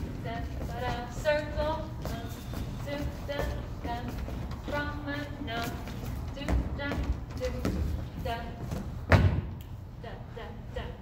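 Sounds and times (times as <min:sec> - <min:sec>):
dance steps on wooden floor: 0:00.0 - 0:09.6.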